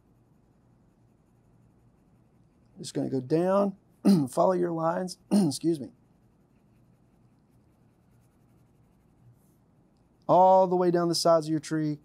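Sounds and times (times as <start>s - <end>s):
pencil scratching on paper: 0.0s - 2.9s, 5.6s - 9.6s.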